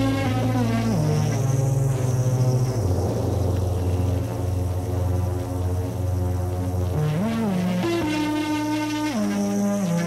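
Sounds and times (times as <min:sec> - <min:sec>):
droning synth bass line: 0:00.0 - 0:10.0
techno music: 0:00.0 - 0:10.0.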